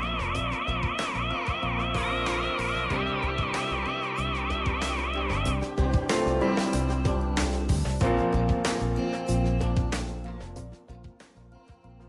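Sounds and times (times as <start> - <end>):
warbling warning siren: 0.0 - 6.0
background music: 0.0 - 12.0.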